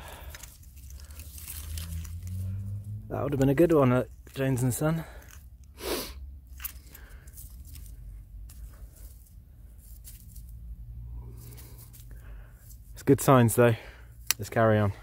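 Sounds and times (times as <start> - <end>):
gloved hand digging in soil: 0.1 - 10.5.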